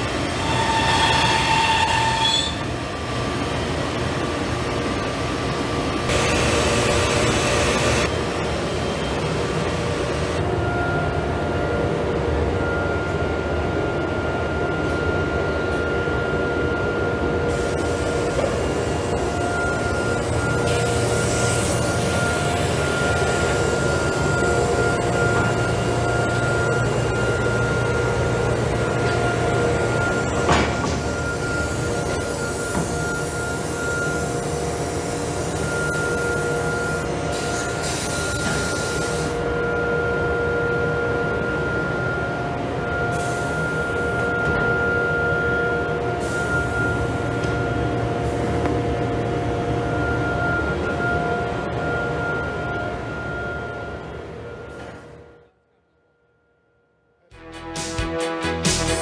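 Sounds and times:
constant high whine: 2.1 - 55.0.

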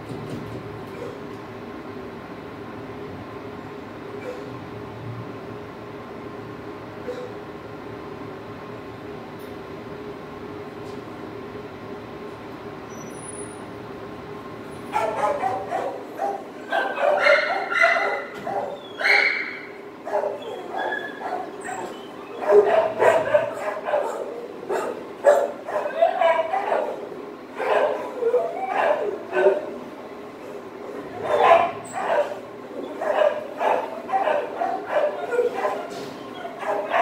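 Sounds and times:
dogs barking and whining: 0.9 - 1.3, 4.2 - 4.6, 7.0 - 7.4, 14.7 - 37.0.

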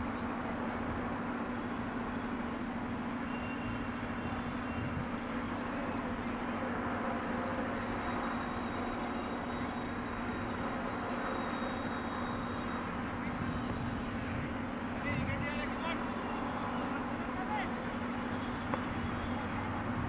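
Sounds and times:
distant indistinct voices: 0.0 - 20.0
low hum and rushing noise: 0.0 - 20.0.

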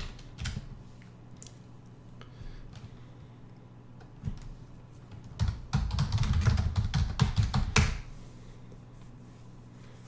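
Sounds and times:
computer keyboard typing: 0.0 - 0.7, 5.1 - 8.0.

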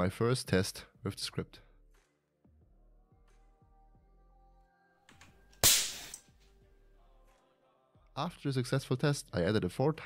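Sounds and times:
firework igniter pop: 5.6 - 6.2.

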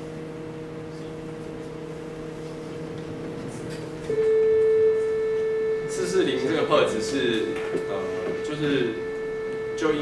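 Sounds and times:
steady sine tone: 4.0 - 10.0
faint steady tones: 4.1 - 10.0.

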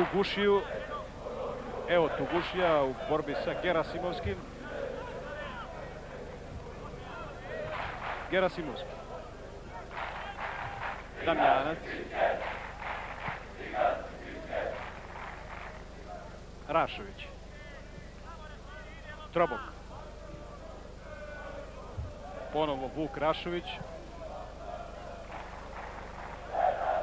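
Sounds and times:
stadium crowd shouting and chanting: 0.0 - 27.0.

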